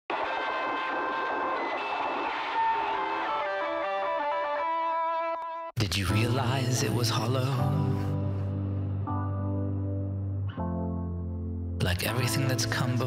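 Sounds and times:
electric guitar with effects: 0.1s - 5.7s.

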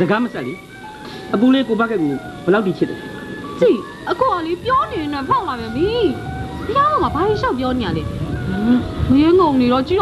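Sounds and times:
man and woman talking: 1.3s - 9.8s.

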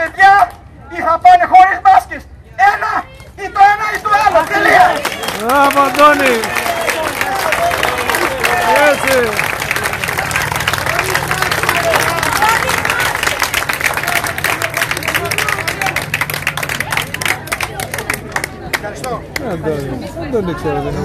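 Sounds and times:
voices calling out: 2.3s - 21.0s
crowd applauding: 4.2s - 19.5s.

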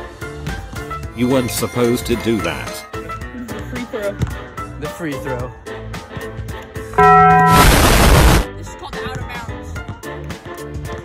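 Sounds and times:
background music: 0.0s - 11.0s
buzzer-like tone: 7.0s - 8.4s
explosion-like burst: 7.0s - 8.5s.

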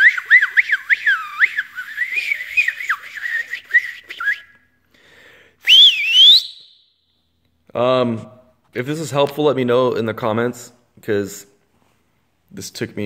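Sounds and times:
man whistling warbling: 0.0s - 4.6s, 5.6s - 6.8s
rising and dipping whistle: 0.0s - 4.6s, 5.6s - 6.9s.

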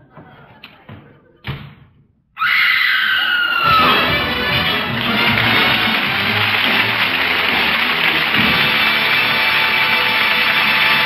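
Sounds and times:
loud musical bridge: 3.7s - 11.0s.

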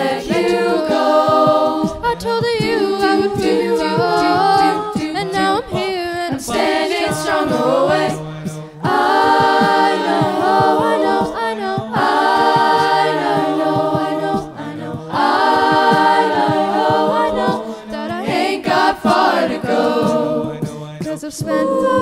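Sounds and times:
vocal group holding chord: 0.0s - 22.0s.

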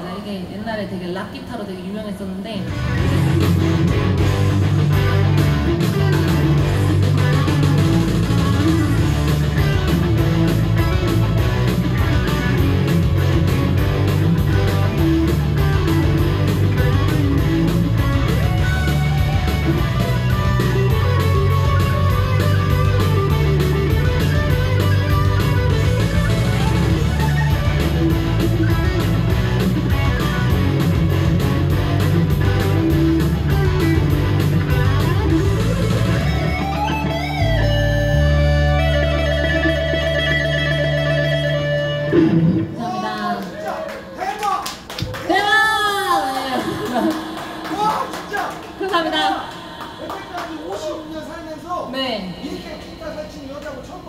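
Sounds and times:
loud electric guitar lead: 2.6s - 43.6s, 45.3s - 53.2s
steady beat: 2.8s - 42.4s, 46.4s - 54.0s.

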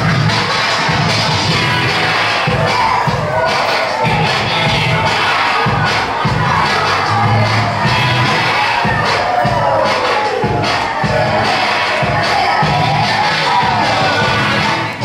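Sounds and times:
children shouting: 0.0s - 15.0s
dance music with steady beat: 0.0s - 15.0s
audience cheering: 0.4s - 15.0s.

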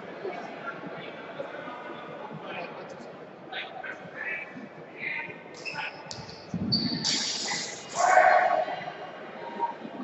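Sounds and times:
indistinct voices: 7.0s - 10.0s.

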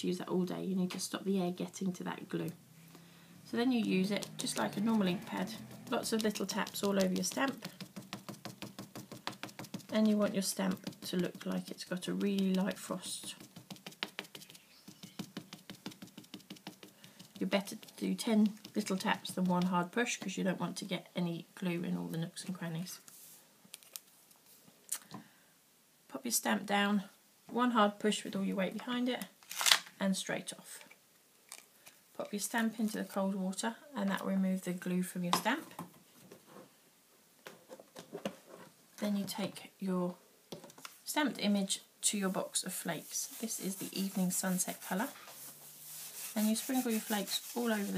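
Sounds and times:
foam dabbing on stamp: 3.8s - 20.4s, 42.7s - 47.9s.

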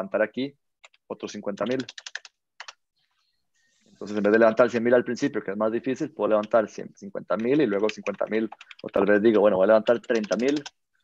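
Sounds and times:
computer keyboard keystrokes: 1.6s - 2.8s, 7.4s - 9.0s, 9.8s - 10.8s.

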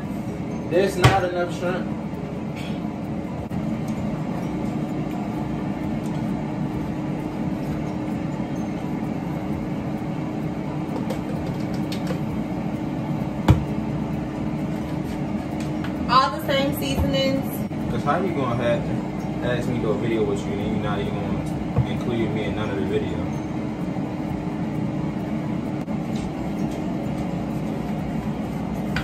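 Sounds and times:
appliance fan humming: 0.0s - 29.0s.

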